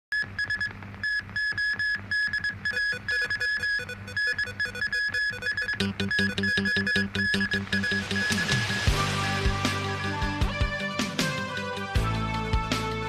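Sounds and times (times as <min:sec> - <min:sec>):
staccato synthesizer beeps: 0:00.2 - 0:08.9
low bass pulse: 0:05.8 - 0:10.8.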